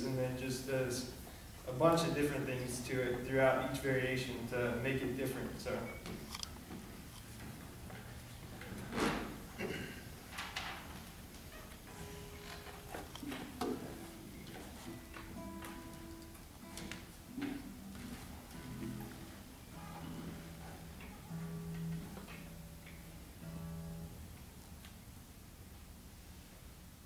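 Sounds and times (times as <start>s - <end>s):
classical guitars plucking notes: 0.0s - 26.0s.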